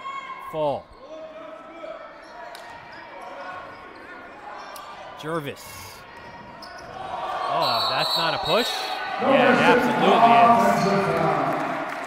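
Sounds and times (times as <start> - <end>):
echoing voices: 8.4 - 12.0.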